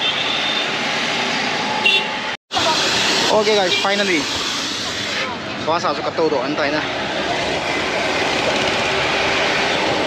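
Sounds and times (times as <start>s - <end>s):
highway traffic passing: 0.0s - 10.0s.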